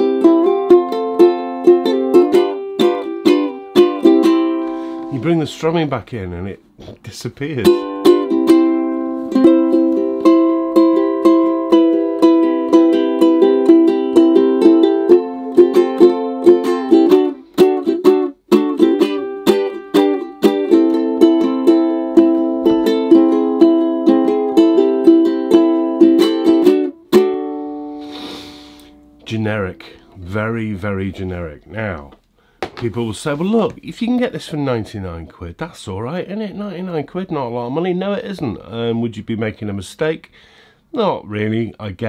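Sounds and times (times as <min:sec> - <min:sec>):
ukulele strummed chords: 0:00.0 - 0:05.7, 0:07.5 - 0:30.6.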